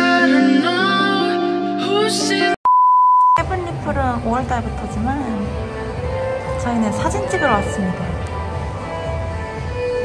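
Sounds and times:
background pop music: 0.0s - 2.7s, 3.4s - 10.0s
high electronic beep: 2.7s - 3.4s
woman speaking: 3.4s - 5.4s, 6.6s - 8.2s.

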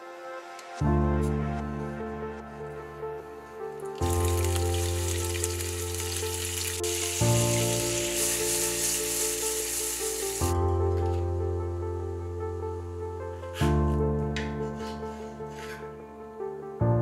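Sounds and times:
soft background music: 0.0s - 17.0s
shrimp sizzling in hot oil: 4.0s - 10.6s.

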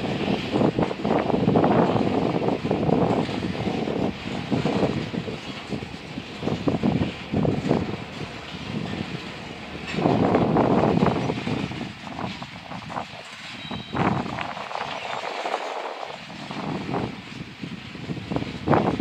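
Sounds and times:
freight train wheels rumbling on rails: 0.0s - 19.0s.

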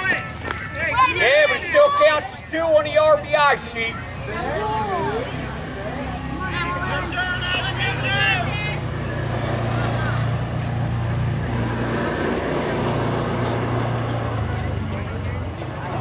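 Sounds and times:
voices calling out: 0.0s - 16.0s.

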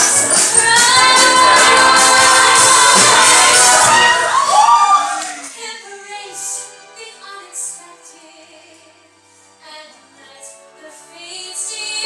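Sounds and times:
cast singing together: 0.0s - 4.5s
musical accompaniment: 0.0s - 12.0s.

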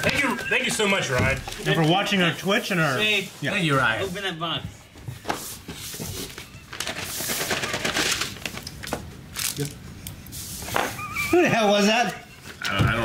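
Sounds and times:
paper and cardboard rustling: 0.0s - 9.7s.

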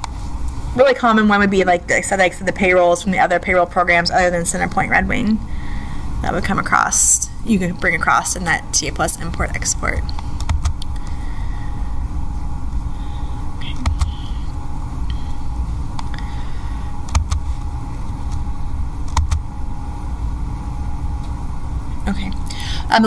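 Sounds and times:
low room rumble: 0.0s - 23.0s.

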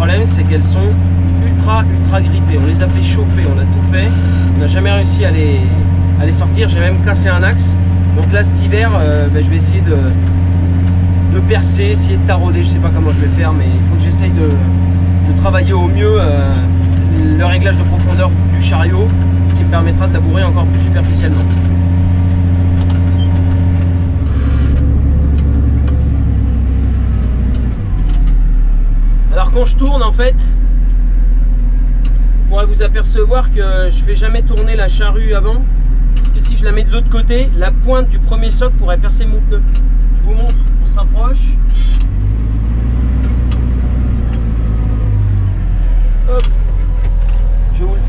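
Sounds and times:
tractor engine running under load: 0.0s - 48.0s.

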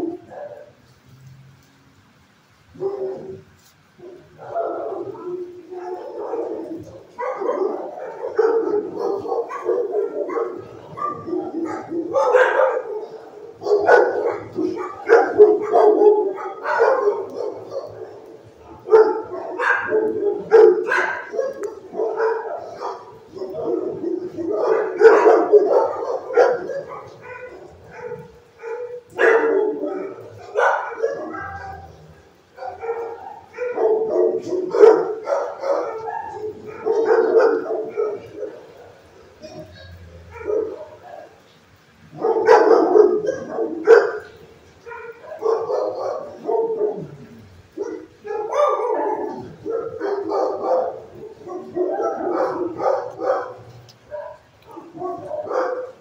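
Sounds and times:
dogs barking: 0.0s - 1.0s, 2.6s - 56.0s.

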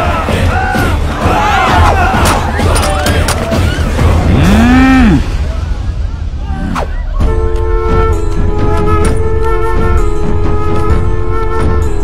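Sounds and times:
man bellowing yell: 4.3s - 5.3s.

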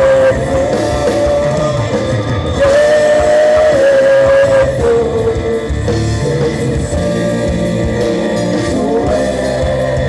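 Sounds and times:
worship band playing: 0.0s - 10.0s.

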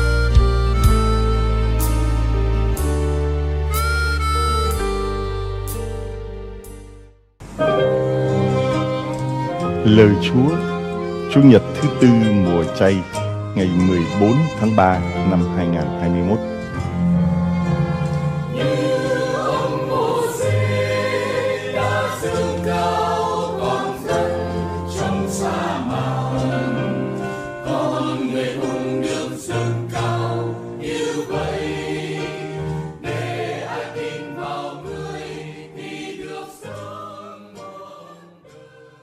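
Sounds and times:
sustained low accompaniment: 0.0s - 20.0s
choir singing a sacred piece: 17.6s - 39.0s.

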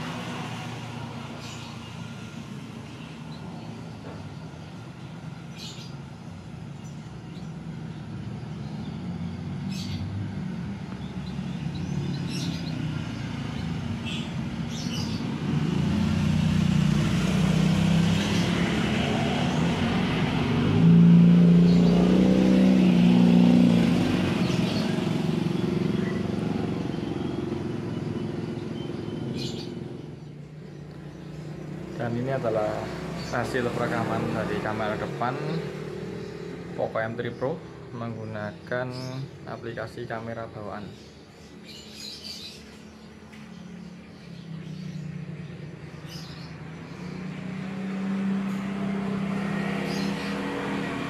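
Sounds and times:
birds chirping: 0.0s - 51.0s
motorcycle engine passing: 7.8s - 38.2s, 41.7s - 51.0s.

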